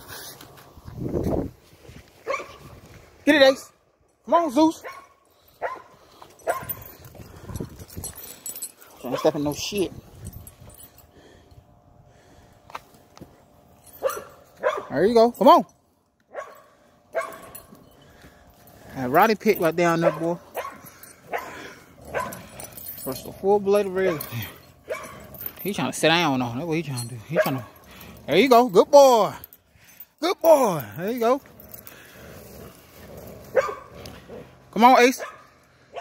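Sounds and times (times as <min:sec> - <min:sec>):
dogs growling roughly: 0:17.3 - 0:29.6, 0:30.8 - 0:34.8.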